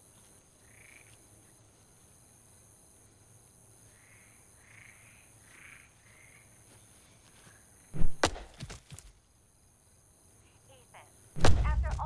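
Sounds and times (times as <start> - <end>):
frog croaking: 0.6 - 1.2, 3.9 - 6.5.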